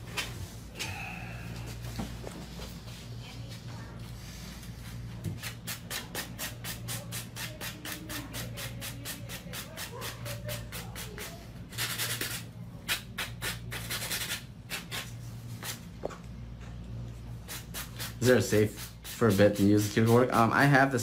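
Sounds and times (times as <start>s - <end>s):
nail file rasping on nail: 5.4s - 15.8s.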